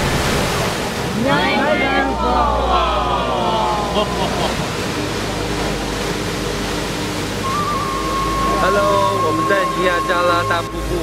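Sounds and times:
rush of falling water: 0.0 - 11.0
voices calling in gliding tones: 1.1 - 6.0, 7.2 - 11.0.

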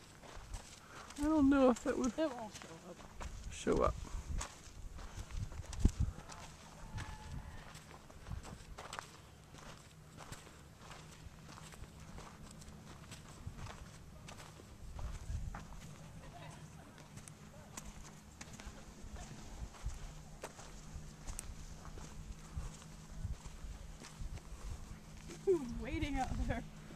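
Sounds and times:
footsteps on dirt path: 0.0 - 26.9
steady low hum: 0.0 - 26.9.

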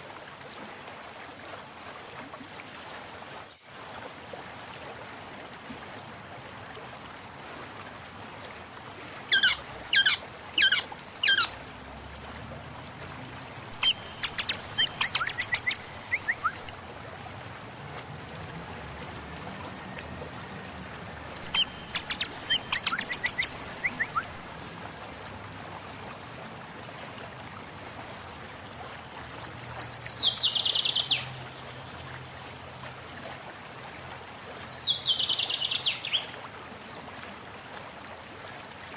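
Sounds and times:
birds calling: 9.3 - 11.6, 13.7 - 16.7, 21.4 - 24.4.

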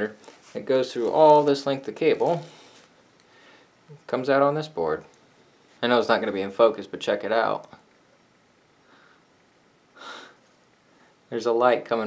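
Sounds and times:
faint soft noise: 0.0 - 12.0.

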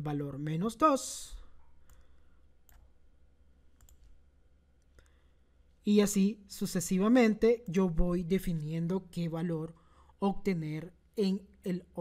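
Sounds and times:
faint computer clicks: 3.7 - 4.2.

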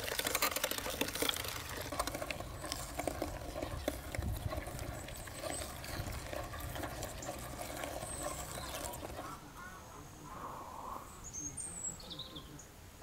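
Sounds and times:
faint bird chirps: 4.8 - 12.8.

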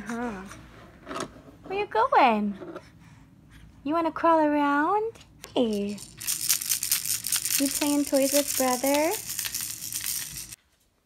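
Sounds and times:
plastic toys rustling and clicking: 5.6 - 10.6.

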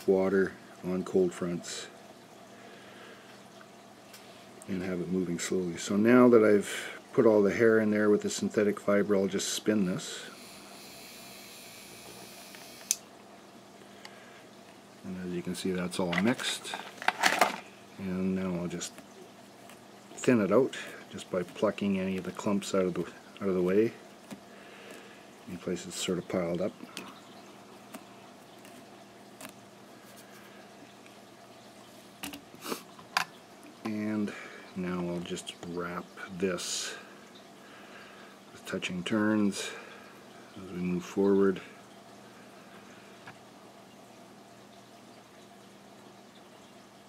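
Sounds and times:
faint steady hum: 0.0 - 47.0
person speaking: 15.0 - 19.0, 20.2 - 24.1.

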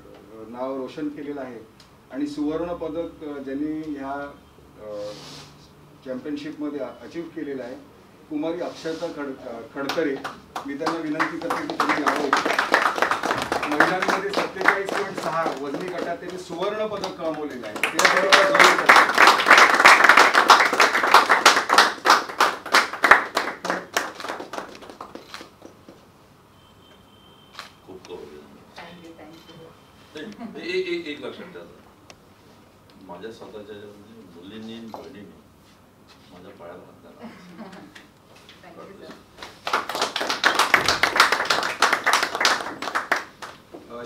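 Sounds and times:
people applauding: 9.8 - 26.0, 39.2 - 43.6
people clapping: 9.8 - 26.0, 39.0 - 43.9.

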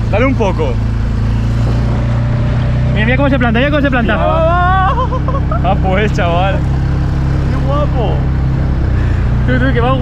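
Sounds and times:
outboard boat motor running: 0.0 - 10.0.

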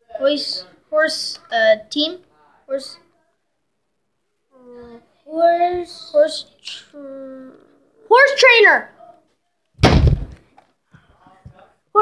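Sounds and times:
loud thump: 9.8 - 10.4.

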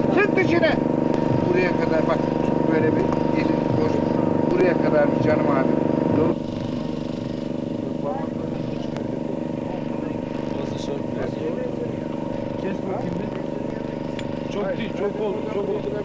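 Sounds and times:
faint voices talking: 0.0 - 16.0
steady droning hum: 0.0 - 16.0.

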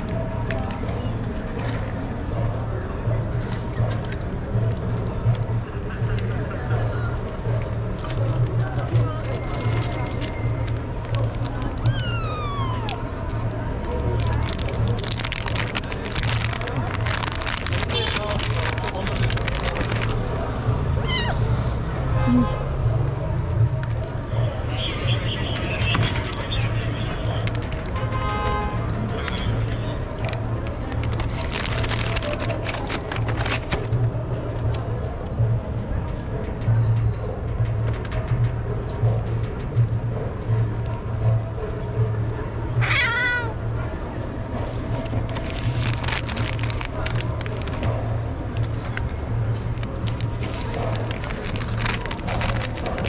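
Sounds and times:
kitten meowing: 11.8 - 13.1, 21.0 - 21.6, 42.8 - 43.6
quick crackling clicks: 13.7 - 20.3.

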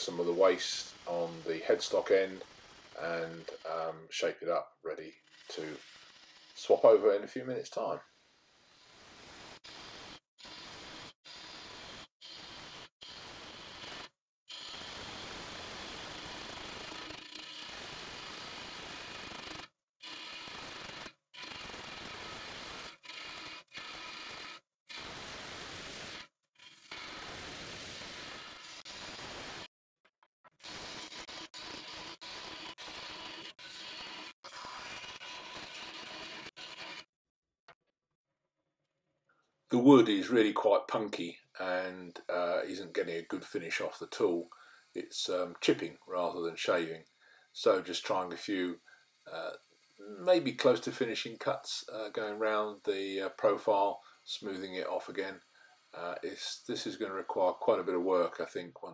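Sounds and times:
gouge cutting wood on lathe: 30.6 - 37.0.

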